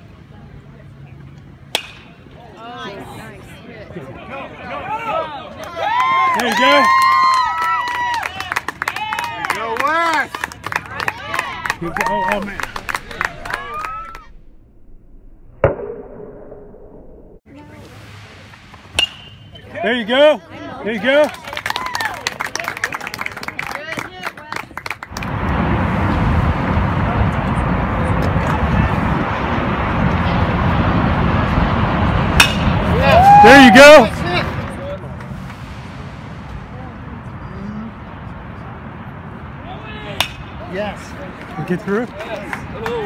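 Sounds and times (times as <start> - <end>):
bat hitting baseball: 1.7 - 2.2, 18.7 - 19.7, 32.4 - 32.7, 40.2 - 40.5
loud rushing noise: 10.9 - 15.6, 17.4 - 20.4, 25.1 - 41.4.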